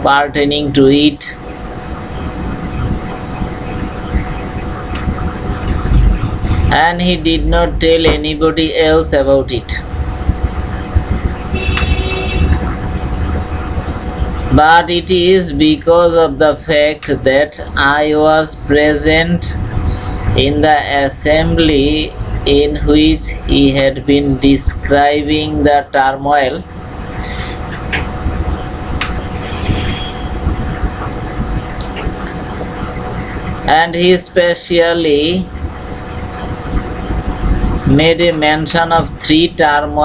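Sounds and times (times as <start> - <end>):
faint constant hum: 0.0 - 40.0
low background rumble: 0.0 - 40.0
brief high-pitched tone: 29.4 - 30.8.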